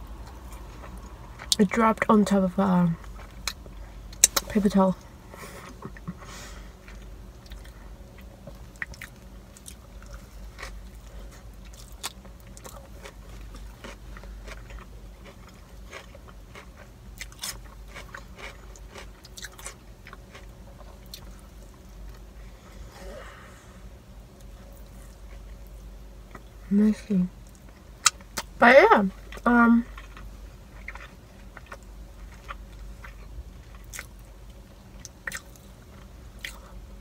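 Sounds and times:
low hum: 0.0s - 37.0s
person chewing: 0.2s - 1.7s, 3.0s - 4.5s, 5.4s - 23.4s, 29.3s - 34.3s, 35.0s - 36.8s.

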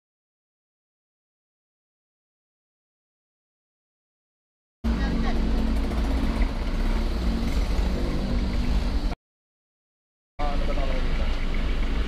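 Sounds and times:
vehicle engine: 4.8s - 9.2s, 10.4s - 12.0s.

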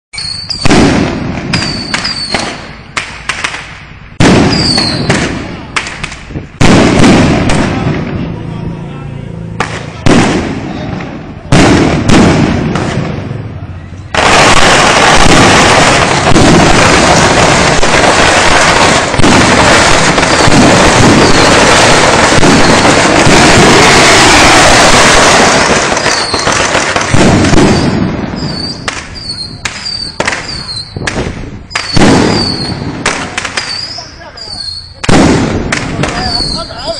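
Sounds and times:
falling firework whistles: 0.2s - 2.7s, 4.2s - 5.3s, 14.0s - 33.0s, 33.6s - 35.0s
firework cracks: 0.2s - 8.4s, 9.5s - 36.9s
loud firework blasts: 0.2s - 36.9s.

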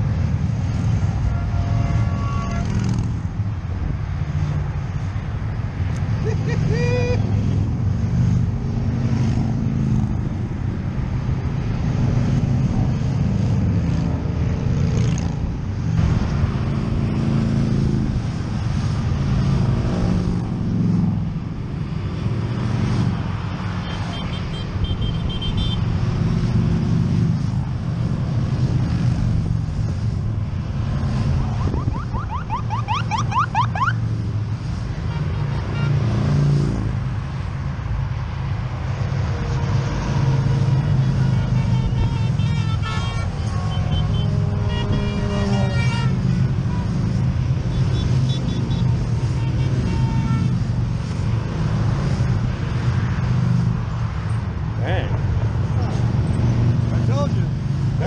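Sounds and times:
motorcycles passing: 0.0s - 58.0s.

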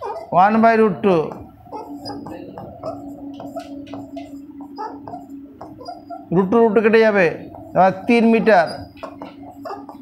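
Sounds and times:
low hum: 0.0s - 10.0s
person speaking: 0.1s - 1.4s, 6.3s - 8.9s.

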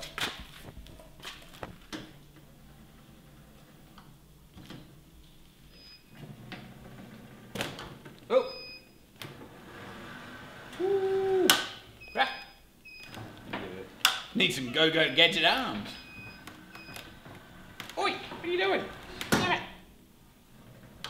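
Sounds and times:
person grunting: 10.8s - 11.6s.

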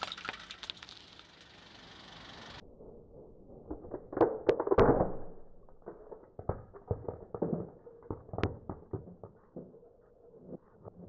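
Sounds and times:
crunching: 0.0s - 1.7s
figurine cracking under a tyre: 0.0s - 1.7s, 3.6s - 9.9s
fragments crackling and grinding: 0.0s - 11.0s.

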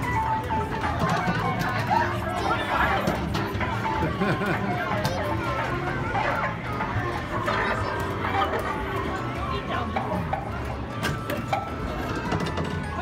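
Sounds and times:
people's voices: 0.1s - 13.0s.

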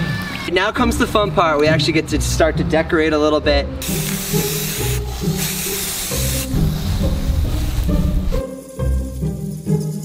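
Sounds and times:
background music: 0.0s - 10.0s
spray paint can hissing: 3.8s - 8.4s.

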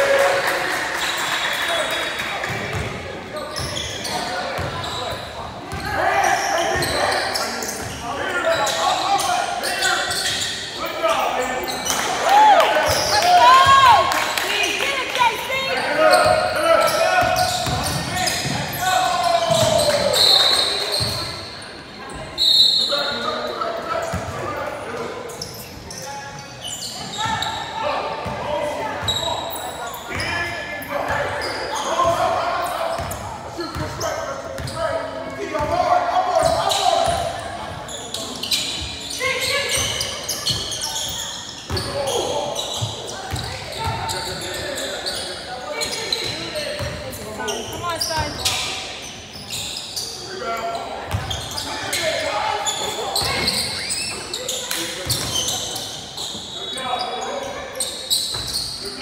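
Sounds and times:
voices of players and spectators: 0.0s - 59.0s.

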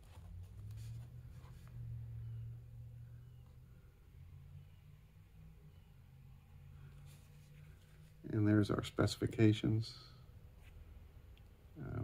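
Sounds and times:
low hum: 0.2s - 8.3s.

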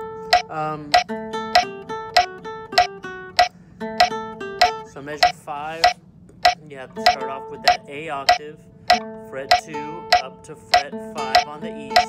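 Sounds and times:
classical guitar melody: 0.0s - 5.0s, 6.8s - 12.0s
sharp clicks: 0.3s - 12.0s.

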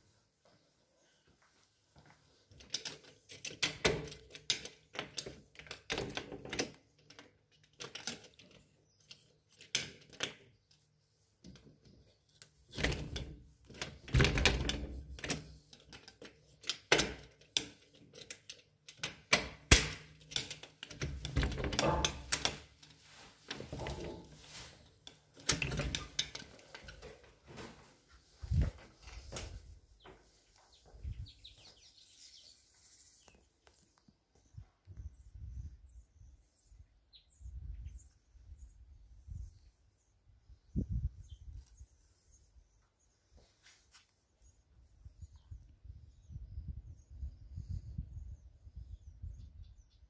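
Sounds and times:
clicking and knocking: 11.4s - 22.9s, 23.5s - 24.4s.

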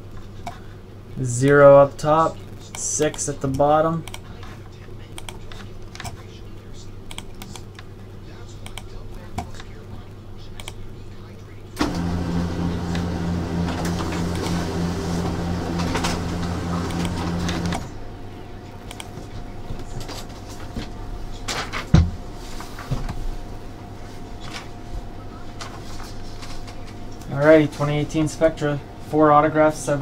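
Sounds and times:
computer mouse clicks: 2.7s - 4.3s, 5.1s - 6.2s, 7.1s - 7.9s, 8.6s - 9.7s, 10.6s - 10.8s, 18.8s - 19.1s
printer humming: 11.8s - 30.0s.

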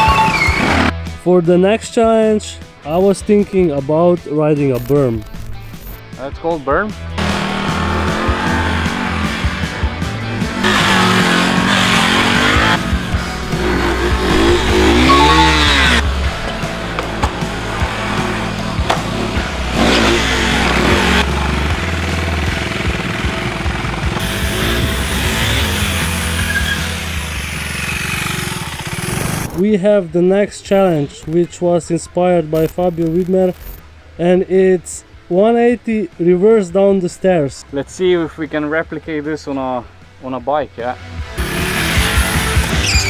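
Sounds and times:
background music with low beat: 0.0s - 26.6s
motorcycle engine revving: 7.2s - 29.6s, 41.4s - 43.0s.

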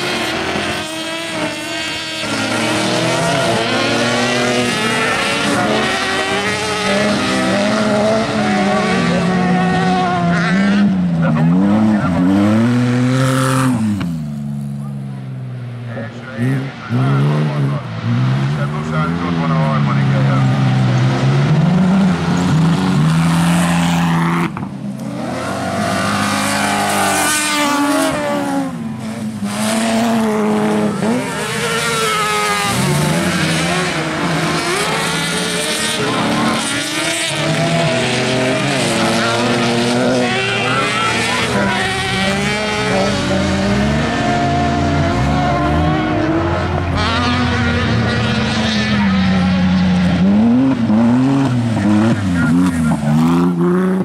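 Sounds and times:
buggy engines racing: 0.0s - 54.0s.

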